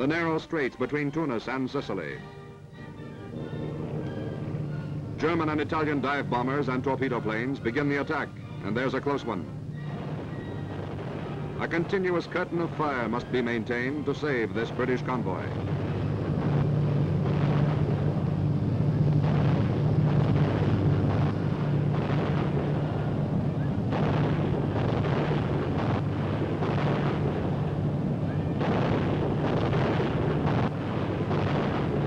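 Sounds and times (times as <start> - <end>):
low steady hum: 0.0 - 32.0
explosions: 3.7 - 32.0
anti-aircraft gunfire: 3.8 - 9.3, 9.9 - 32.0.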